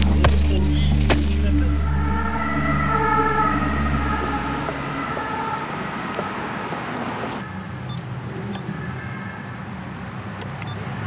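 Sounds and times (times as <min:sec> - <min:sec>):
low bass drone: 0:00.0 - 0:06.6
siren: 0:00.7 - 0:07.8.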